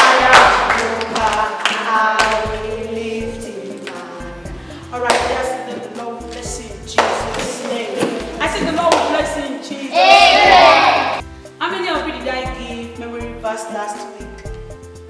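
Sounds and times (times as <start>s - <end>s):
hand claps: 0.0s - 2.5s, 7.0s - 7.7s, 8.9s - 9.2s
woman singing worship song: 0.0s - 10.0s
backing music: 0.0s - 15.0s
woman speaking: 4.9s - 10.0s, 11.6s - 14.4s.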